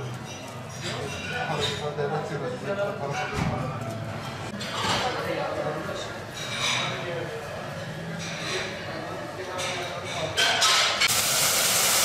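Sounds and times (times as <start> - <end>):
kitchen background noise: 0.0 - 12.0.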